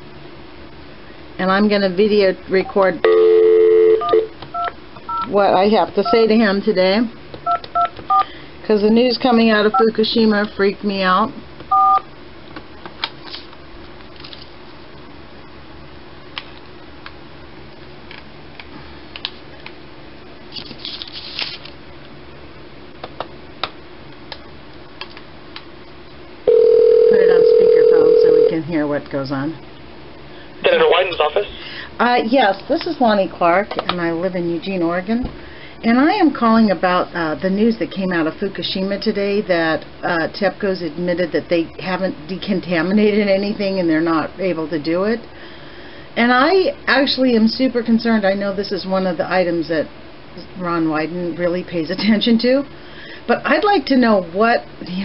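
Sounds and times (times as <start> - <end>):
telephone dial tone: 3.0 - 5.3, 26.5 - 28.6
person speaking: 30.6 - 33.0.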